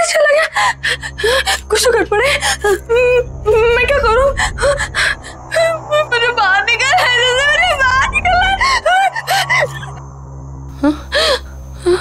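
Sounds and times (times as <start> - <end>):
low steady hum: 0.0 - 12.0
woman gasping and whimpering: 10.8 - 12.0.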